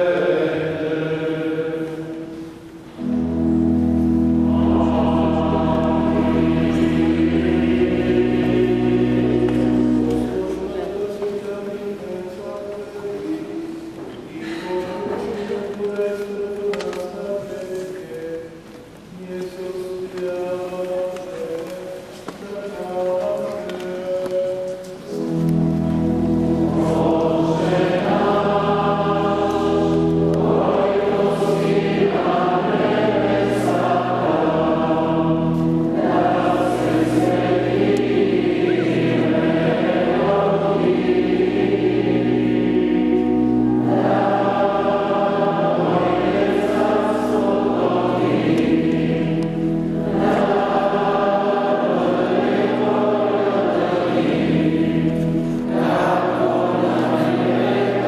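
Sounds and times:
choir chanting: 0.0s - 2.4s, 3.0s - 12.2s, 25.1s - 58.0s.

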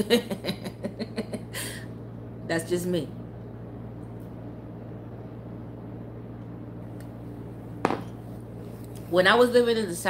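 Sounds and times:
low hum of room tone: 0.0s - 10.0s.

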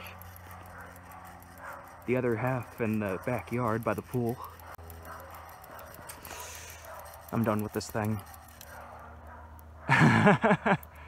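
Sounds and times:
ceiling fan motor humming: 0.0s - 11.0s.

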